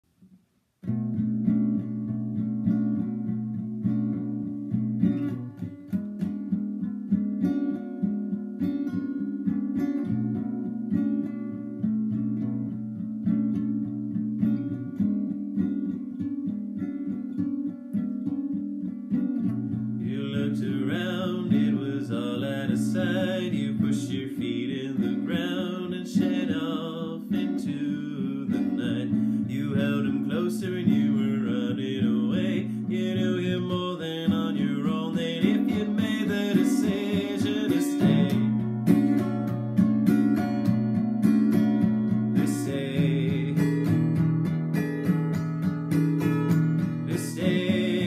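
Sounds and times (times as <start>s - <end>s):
acoustic guitar chords: 0.1s - 48.0s
man singing: 20.0s - 38.6s, 42.4s - 44.4s, 47.0s - 48.0s.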